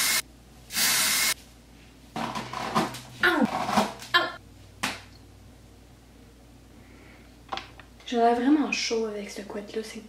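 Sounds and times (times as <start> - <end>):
woman groaning: 3.2 - 3.5.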